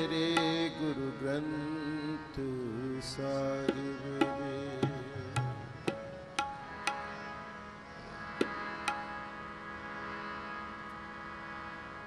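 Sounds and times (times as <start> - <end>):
harmonium sustained chord: 0.0 - 12.0.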